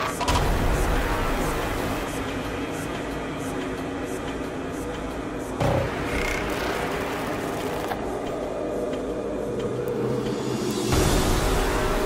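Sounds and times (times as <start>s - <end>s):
droning synth tones: 0.0s - 12.0s.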